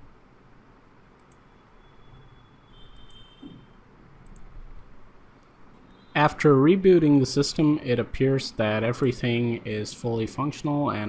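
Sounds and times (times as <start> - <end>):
computer mouse clicks: 1.2 - 1.4, 4.2 - 4.5.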